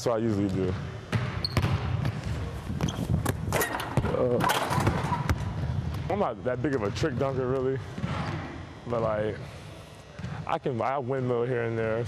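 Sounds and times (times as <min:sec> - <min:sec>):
basketball bouncing on floor: 0:00.5 - 0:06.1
ball slamming through rim: 0:02.8 - 0:05.5.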